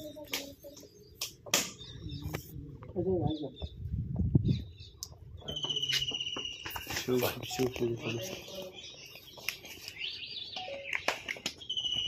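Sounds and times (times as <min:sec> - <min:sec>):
bird call trill: 0:10.0 - 0:12.0.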